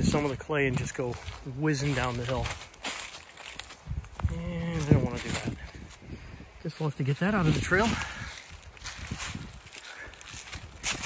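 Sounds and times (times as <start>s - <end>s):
footsteps crunching dry leaves: 0.0s - 11.0s.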